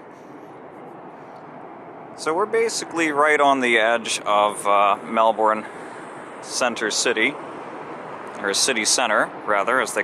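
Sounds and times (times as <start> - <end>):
distant city traffic hum: 0.0 - 10.0.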